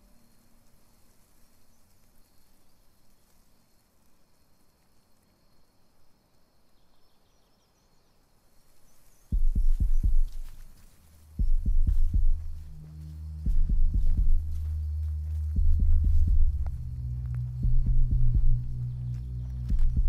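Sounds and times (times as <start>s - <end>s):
heartbeat-like thumps: 9.3s - 20.0s
steady low tone: 9.3s - 20.0s
deep drone: 11.2s - 20.0s.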